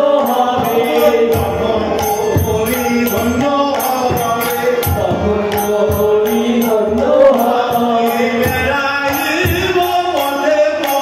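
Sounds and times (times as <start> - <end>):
hand cymbals struck: 0.0 - 11.0
harmonium: 0.0 - 11.0
voices singing devotional melody: 0.0 - 11.0.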